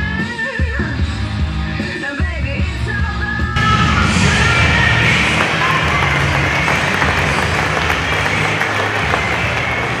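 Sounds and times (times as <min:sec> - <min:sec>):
audience applauding: 0:04.3 - 0:10.0.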